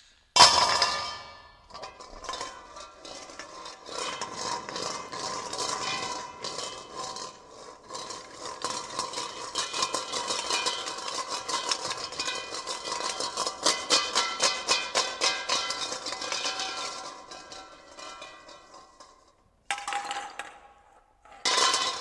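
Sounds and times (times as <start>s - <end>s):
hand scraping metal bowl: 1.6s - 19.4s.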